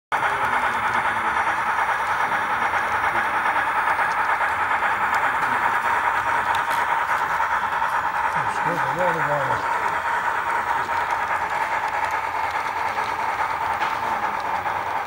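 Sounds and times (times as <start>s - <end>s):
constant high whine: 0.1s - 15.0s
wheels rolling on rails: 0.1s - 15.0s
model train motor whirring: 0.2s - 15.0s.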